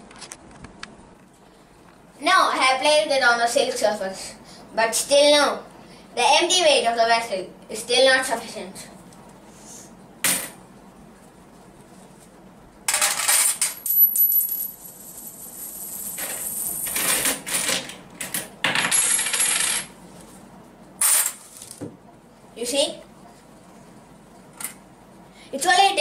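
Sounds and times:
metal coins clinking: 0:12.9 - 0:17.5, 0:18.8 - 0:19.9.

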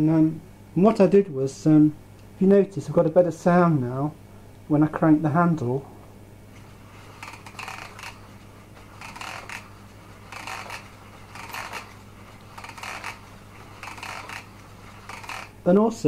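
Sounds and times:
paper automaton clicking rattle: 0:07.2 - 0:08.2, 0:08.9 - 0:15.6.

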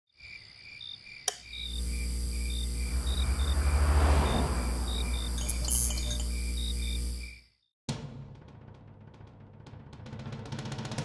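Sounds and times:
crickets chirping: 0:00.1 - 0:07.6
deep low drone: 0:02.5 - 0:06.3.

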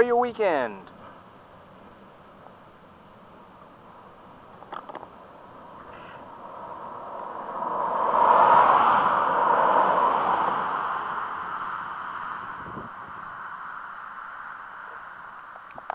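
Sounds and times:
cars driving past: 0:03.6 - 0:15.9.

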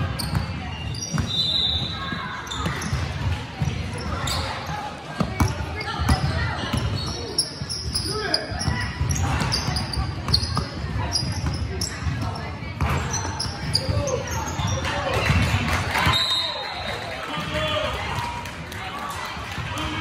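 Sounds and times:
sneakers squeaking: 0:00.0 - 0:17.2.

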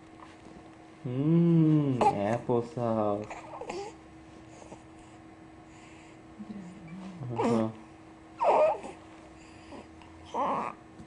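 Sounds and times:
baby fussing cry: 0:08.4 - 0:09.0, 0:10.3 - 0:10.8.

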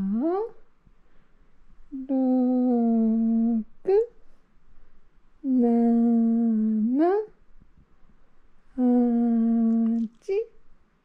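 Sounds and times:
person humming low notes: 0:00.0 - 0:00.5, 0:02.0 - 0:04.0, 0:05.4 - 0:07.2, 0:08.8 - 0:10.0.

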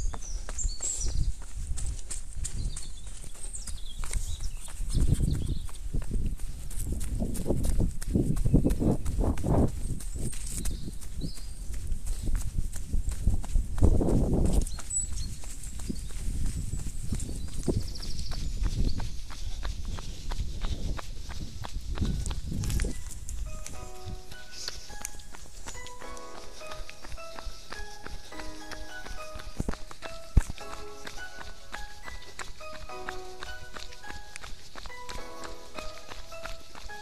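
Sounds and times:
running footsteps on dirt trail: 0:00.0 - 0:37.0.

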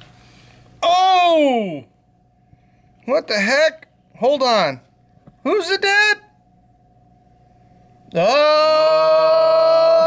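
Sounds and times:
faint steady hum: 0:00.0 - 0:10.0
man speaking: 0:03.0 - 0:06.4.

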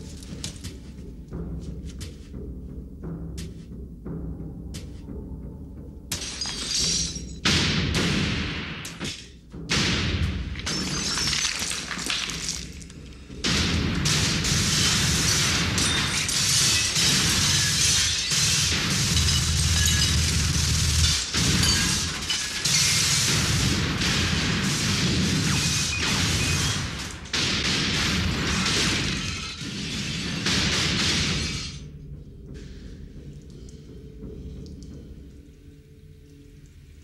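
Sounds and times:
glass and crockery shattering: 0:06.1 - 0:07.4, 0:10.6 - 0:12.9, 0:15.3 - 0:20.4, 0:21.0 - 0:23.2.

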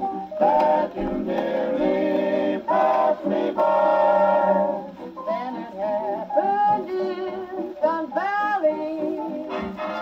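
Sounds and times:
big band swing on gramophone: 0:00.0 - 0:10.0
voices singing melody: 0:00.0 - 0:10.0.

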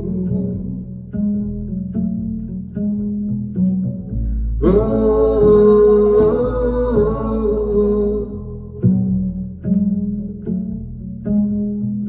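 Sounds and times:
double bass plucked notes: 0:00.0 - 0:12.0.

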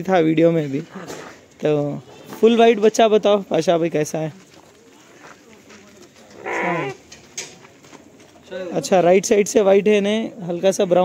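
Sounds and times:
lamb bleating: 0:06.4 - 0:07.0.

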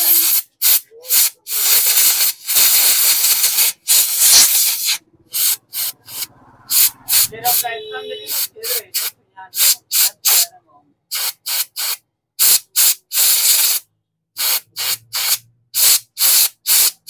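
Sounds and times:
compressed air gun hissing blasts: 0:00.0 - 0:07.3, 0:08.3 - 0:10.4, 0:11.1 - 0:13.8, 0:14.4 - 0:17.0.

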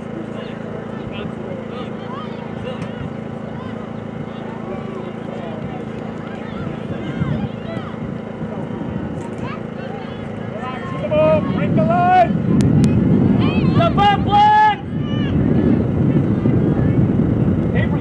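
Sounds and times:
steady low noise: 0:00.0 - 0:18.0
players and spectators shouting: 0:00.1 - 0:12.4, 0:13.3 - 0:17.0.

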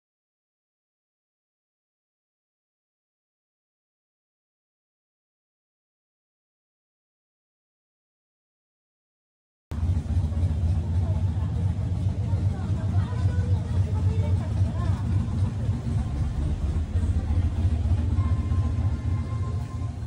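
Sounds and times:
loud low street rumble: 0:09.7 - 0:20.0
faint voices: 0:09.8 - 0:20.0.

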